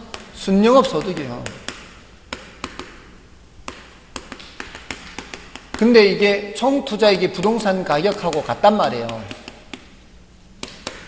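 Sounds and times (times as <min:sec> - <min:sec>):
chalk tapping on chalkboard: 0:00.0 - 0:06.0, 0:07.4 - 0:10.0, 0:10.6 - 0:11.0.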